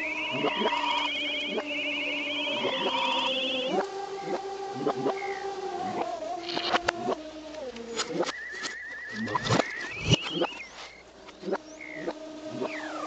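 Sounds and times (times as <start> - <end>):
cartoon sound effects: 0.0 - 4.4
fast warbling trill: 0.0 - 7.2
reversed cartoon music: 0.0 - 13.0.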